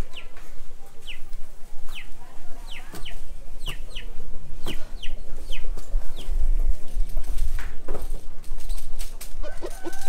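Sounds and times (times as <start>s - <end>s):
chickens calling: 0.0s - 7.4s, 8.2s - 10.0s.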